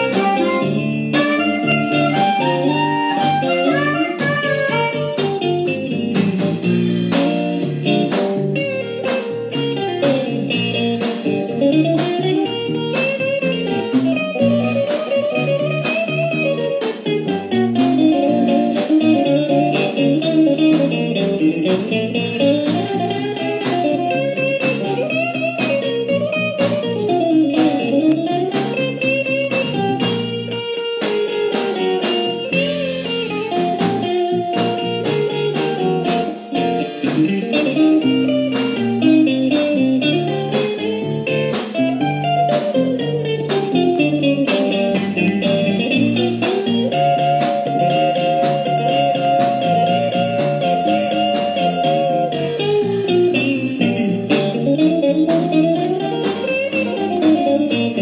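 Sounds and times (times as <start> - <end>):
blues guitar melody: 0.0 - 58.0
keyboard chords: 0.0 - 58.0
steady drum beat: 0.0 - 58.0.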